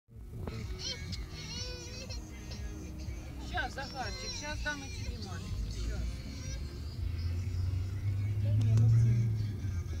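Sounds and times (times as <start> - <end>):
car cabin rumble: 3.1 - 10.0.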